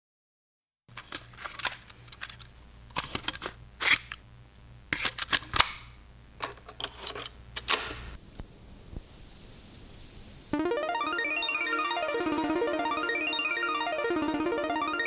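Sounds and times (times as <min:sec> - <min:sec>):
low steady hum: 0:01.0 - 0:11.2.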